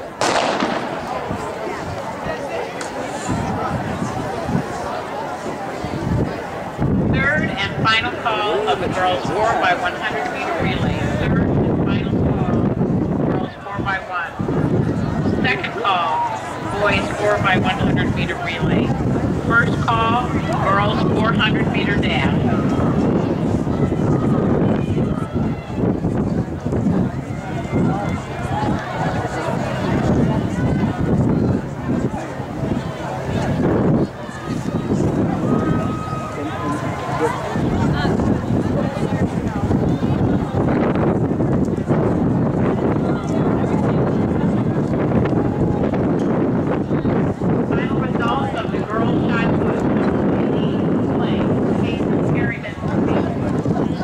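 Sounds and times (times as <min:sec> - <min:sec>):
starter's pistol crack: 0:00.2 - 0:01.2
spectators shouting: 0:14.4 - 0:40.6.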